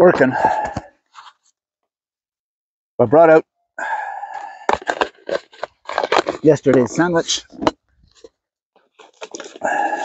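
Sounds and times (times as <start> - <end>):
plastic lid clicks and crinkles: 4.7 - 8.3, 8.9 - 9.6.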